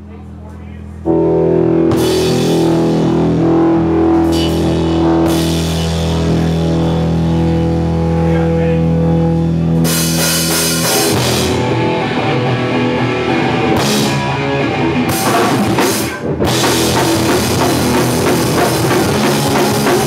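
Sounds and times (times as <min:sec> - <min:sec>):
punk rock band playing: 0:01.1 - 0:20.0.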